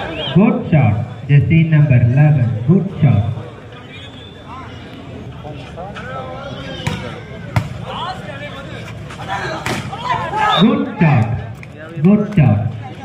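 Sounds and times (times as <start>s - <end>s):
crowd and players shouting: 0.0s - 0.7s, 2.9s - 13.0s.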